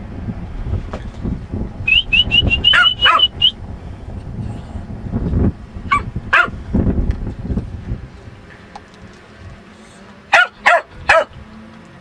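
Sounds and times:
dog barking: 0:02.7 - 0:03.3, 0:05.9 - 0:06.6, 0:10.3 - 0:11.3.

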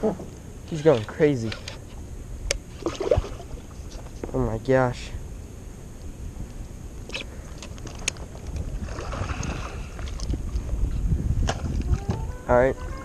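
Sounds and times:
wind rumbling on microphone: 0:06.1 - 0:13.0
fish splashing at surface: 0:08.8 - 0:10.4.

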